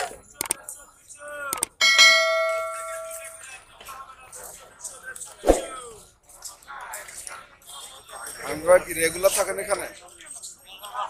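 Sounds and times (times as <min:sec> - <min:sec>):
bright metallic ding: 0:01.8 - 0:03.4.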